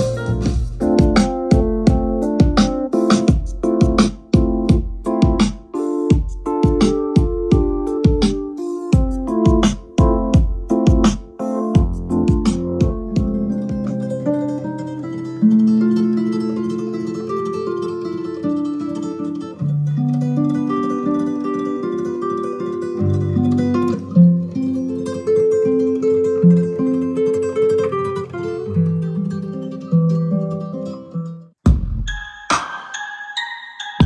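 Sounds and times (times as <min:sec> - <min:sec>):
instrumental guitar music: 0:00.0 - 0:31.6.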